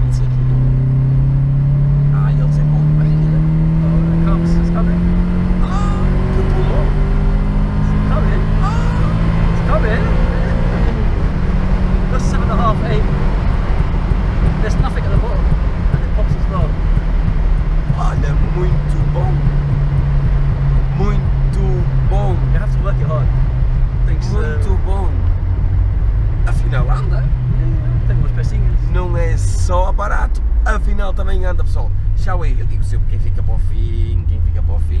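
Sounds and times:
car engine accelerating: 0.0 - 35.0.

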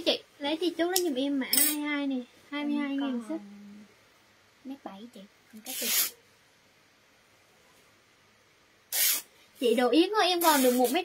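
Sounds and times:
brief hiss: 5.6 - 6.2, 8.9 - 9.3.

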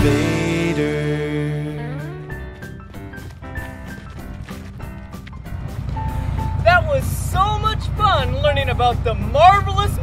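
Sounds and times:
background music: 0.0 - 10.0
excavator diesel engine rumble: 3.3 - 10.0.

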